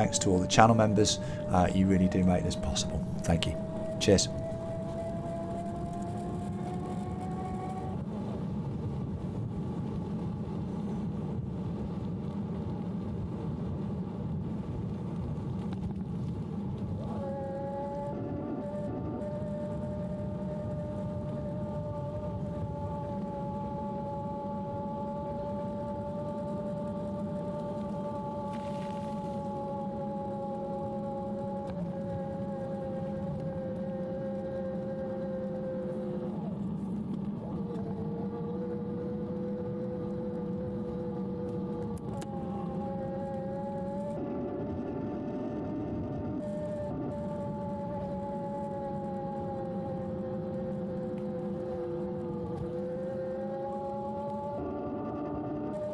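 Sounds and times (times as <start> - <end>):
electric motor whining: 0.0 - 8.1, 16.9 - 55.9
wind and road noise: 0.0 - 55.9.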